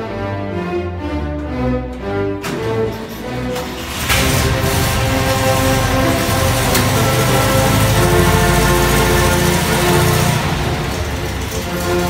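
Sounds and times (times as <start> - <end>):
music with held notes: 0.0 - 12.0
engine running with rough rumble: 3.1 - 12.0.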